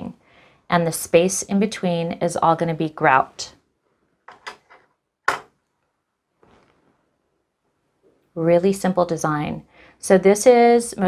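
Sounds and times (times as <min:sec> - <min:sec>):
sharp knock: 0:05.3 - 0:05.5.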